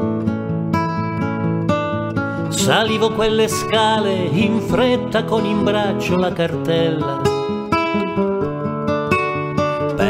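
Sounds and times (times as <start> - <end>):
acoustic guitar strumming chords: 0.0 - 10.0.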